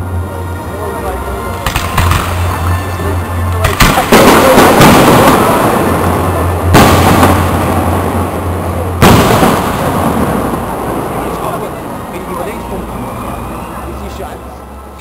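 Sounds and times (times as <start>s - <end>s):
rolling echo: 0.0s - 13.9s
firework shells bursting: 1.6s - 2.9s, 3.6s - 10.7s.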